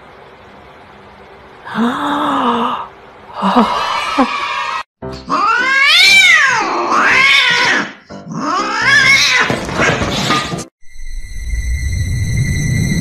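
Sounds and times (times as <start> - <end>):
cat yowling: 4.0 - 9.5.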